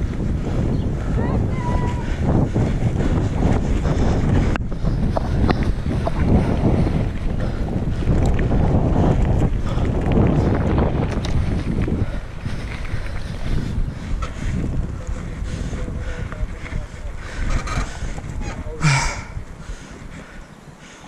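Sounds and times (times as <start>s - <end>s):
wind buffeting microphone: 0.0s - 21.0s
bike clicks and rattles: 2.0s - 20.4s.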